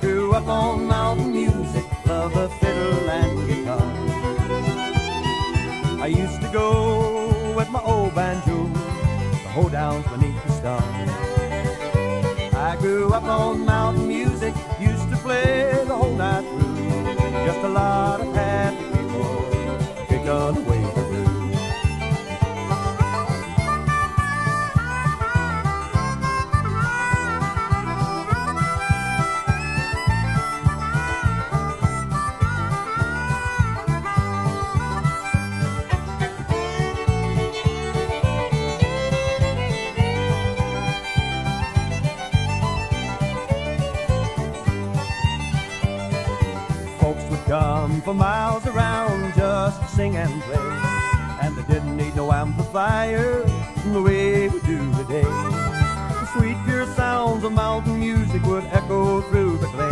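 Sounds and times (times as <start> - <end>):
country music instrumental: 0.0 - 59.9.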